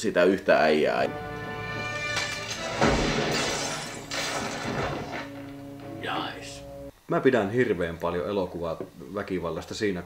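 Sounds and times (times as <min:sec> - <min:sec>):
music holding sustained chord: 0:01.1 - 0:02.6, 0:05.1 - 0:06.9
glass bottles shattering: 0:02.1 - 0:05.4.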